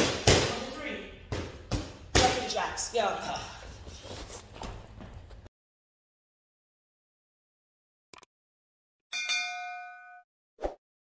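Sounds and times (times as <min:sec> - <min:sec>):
bright bell ding: 0:09.1 - 0:10.3.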